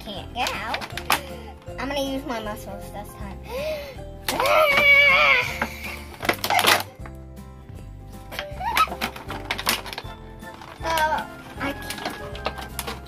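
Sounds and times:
background music with steady beat: 0.0s - 13.0s
plastic case clicking and rattling: 0.4s - 1.4s, 5.6s - 7.2s, 8.3s - 13.0s
person gasping: 3.4s - 4.0s.

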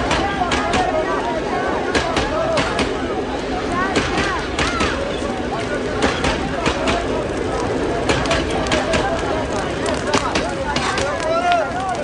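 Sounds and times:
noisy background: 0.0s - 12.0s
voices talking and calling out: 0.0s - 12.0s.

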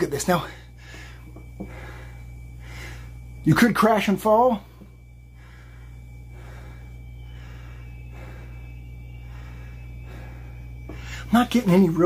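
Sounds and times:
steady low hum: 0.0s - 12.0s
man breathing hard: 0.4s - 3.4s, 4.6s - 11.4s.

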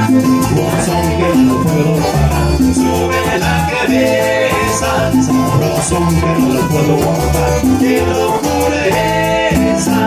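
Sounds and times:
percussion: 0.0s - 10.0s
person singing: 0.0s - 10.0s
strummed acoustic guitars: 0.0s - 10.0s
upright bass line: 0.0s - 10.0s.

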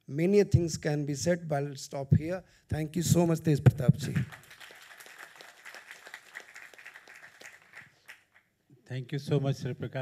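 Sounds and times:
audience applauding: 4.0s - 8.5s.

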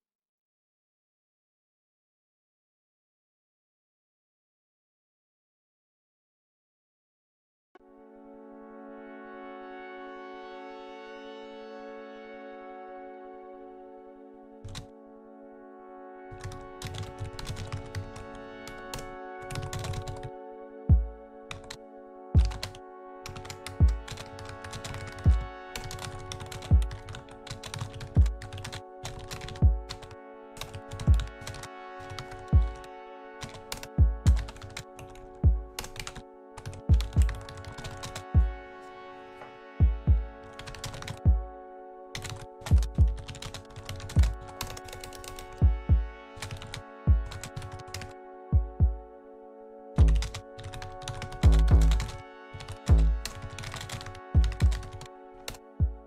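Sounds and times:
computer keyboard typing clicks: 16.4s - 18.0s, 19.5s - 20.3s, 23.4s - 25.2s, 25.8s - 30.0s, 42.2s - 45.4s, 46.4s - 46.8s, 50.0s - 52.7s, 53.5s - 55.1s
synthesized kick drum thumps: 20.9s - 21.2s, 23.8s - 24.1s, 25.3s - 25.5s, 26.7s - 26.9s, 28.2s - 28.4s, 29.6s - 29.9s, 31.1s - 31.3s, 32.6s - 32.8s, 34.0s - 34.4s, 35.4s - 35.8s, 37.0s - 37.4s, 38.4s - 38.6s, 39.8s - 40.3s, 41.3s - 41.5s, 42.7s - 43.2s, 44.2s - 44.4s, 45.6s - 46.1s, 47.1s - 47.3s, 48.5s - 49.0s, 50.0s - 50.4s, 51.4s - 52.0s, 52.9s - 53.3s, 54.4s - 54.8s, 55.8s - 56.0s.

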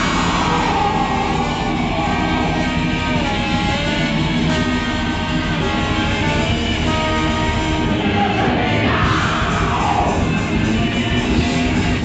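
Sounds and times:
electric guitars ringing: 0.0s - 12.0s
punk band playing live: 0.0s - 12.0s.

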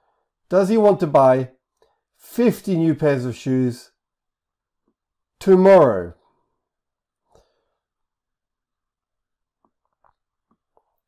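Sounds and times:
man speaking: 0.5s - 1.6s, 2.2s - 3.9s, 5.4s - 6.2s.

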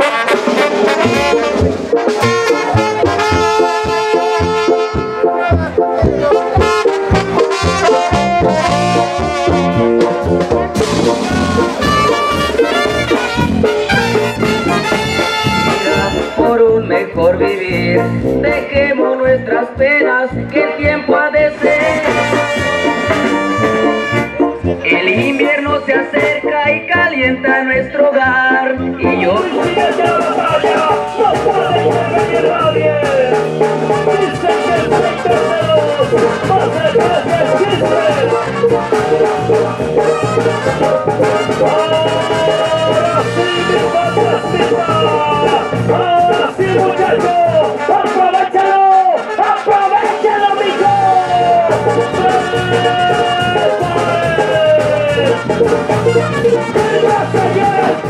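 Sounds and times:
bass and drums beat: 0.0s - 48.5s, 49.8s - 58.0s
brass band playing lively tune: 0.0s - 58.0s.

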